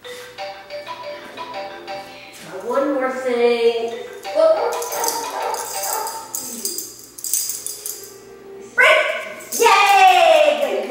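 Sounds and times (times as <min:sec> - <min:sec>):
leash clip and tags jingling: 0:04.1 - 0:08.2, 0:09.3 - 0:10.8.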